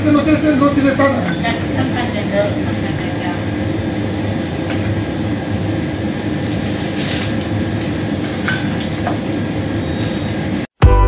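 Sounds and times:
low shop rumble: 0.0 - 10.7
plastic bag rustling: 6.3 - 9.0.

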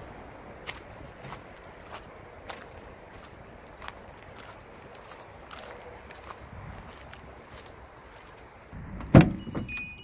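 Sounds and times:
van door clunk: 8.9 - 9.9
electronic warning chime: 9.4 - 10.0.

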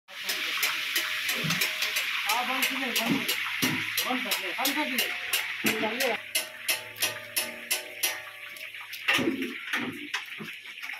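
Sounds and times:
dough frying in hot oil: 0.1 - 10.9.

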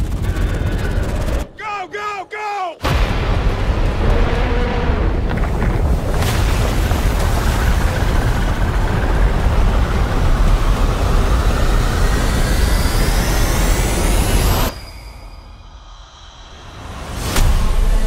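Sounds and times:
dense low rumble: 2.9 - 14.3
rising whine: 9.6 - 18.0.

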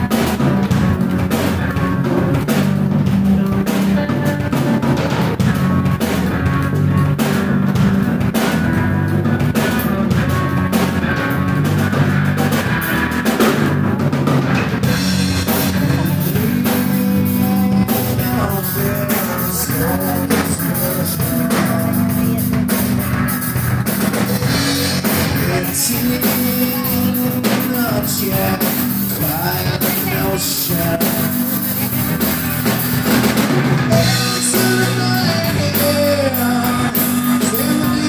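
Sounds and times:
live rock band playing: 0.0 - 38.0.

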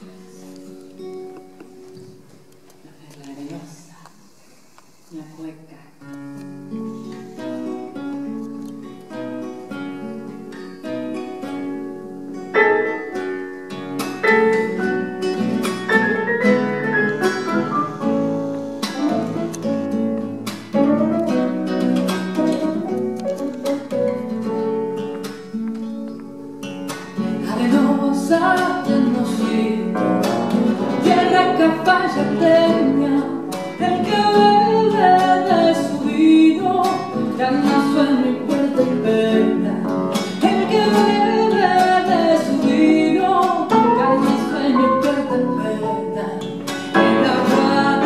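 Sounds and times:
classical guitar: 0.0 - 48.0
piano: 6.0 - 48.0.

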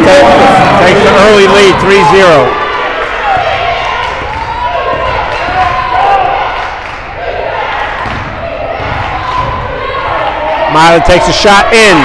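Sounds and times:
people shouting and talking: 0.0 - 12.0.

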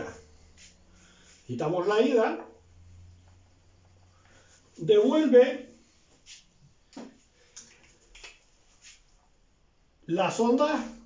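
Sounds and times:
faint clicks and scuffs: 0.0 - 1.6, 5.8 - 9.4.

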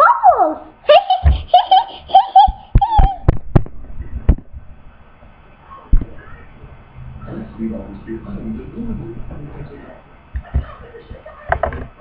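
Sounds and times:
child laughing: 0.8 - 3.3.

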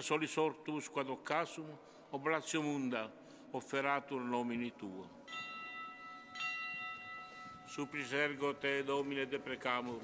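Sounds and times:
altar bell ringing: 5.3 - 8.9.

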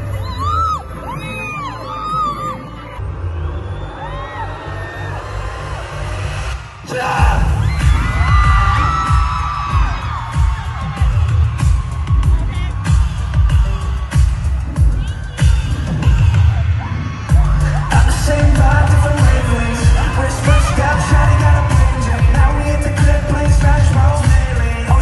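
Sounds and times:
live pop concert music: 0.0 - 25.0.

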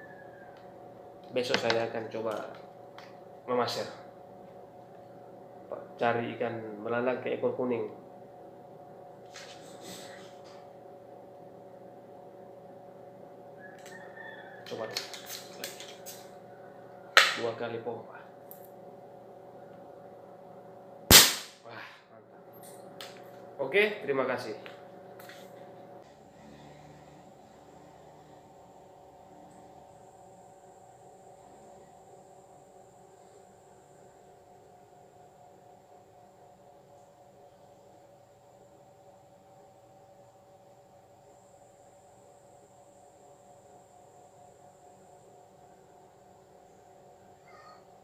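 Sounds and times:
steady hum of constant tones: 0.0 - 48.0.

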